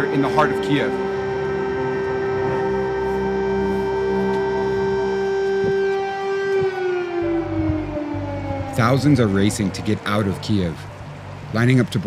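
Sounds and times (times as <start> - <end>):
air raid siren: 0.0 - 11.8
music: 0.0 - 12.0.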